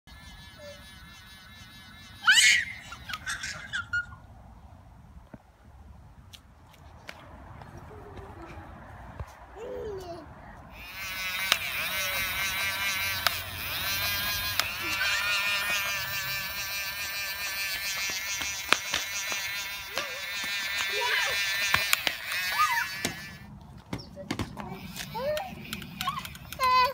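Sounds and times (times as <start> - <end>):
child squealing: 2.1 - 4.2, 11.6 - 12.8, 13.8 - 16.2, 19.9 - 23.4, 24.8 - 26.9
bubble gun whirring: 10.8 - 23.5, 24.8 - 26.9.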